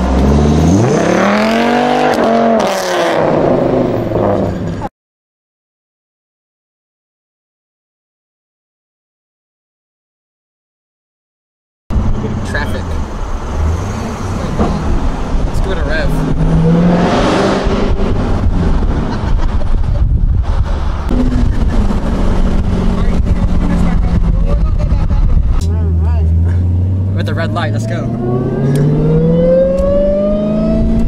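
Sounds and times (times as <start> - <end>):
wind noise on microphone: 16.1 - 25.7, 28.2 - 31.0
car engine from inside cabin: 21.0 - 31.0.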